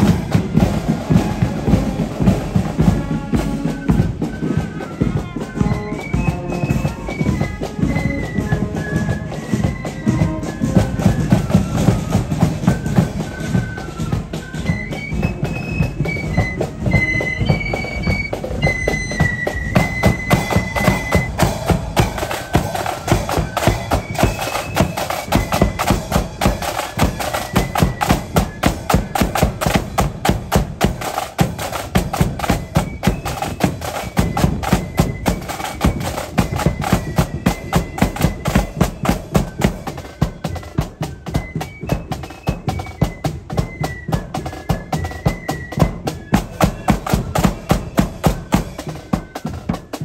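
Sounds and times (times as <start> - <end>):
flute melody: 0.0 - 50.0
rapid drumming: 18.3 - 40.6.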